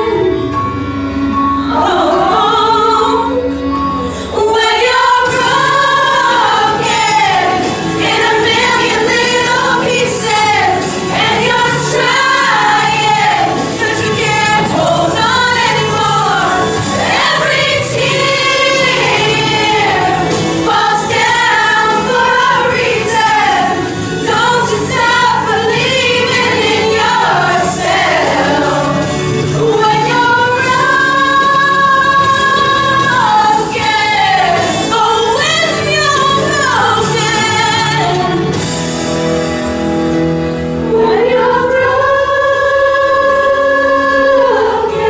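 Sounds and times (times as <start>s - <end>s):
women's choir singing: 1.7s - 3.4s, 4.3s - 38.5s, 40.8s - 45.0s.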